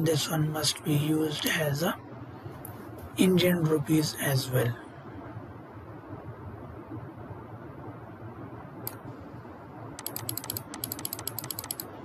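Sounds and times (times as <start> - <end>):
mouse scroll wheel clicking: 10.0 - 11.9.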